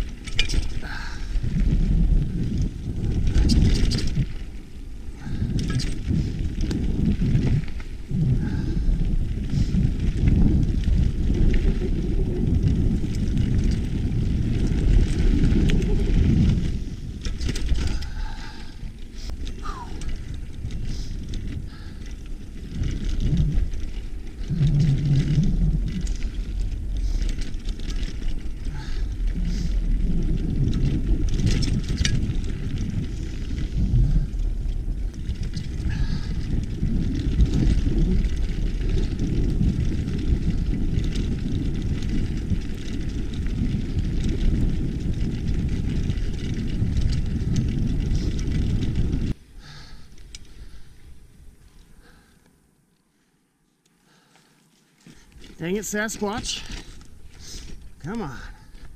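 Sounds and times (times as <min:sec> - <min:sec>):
wind buffeting microphone: 0:00.0 - 0:52.3
tyres on dirt: 0:54.2 - 0:58.9.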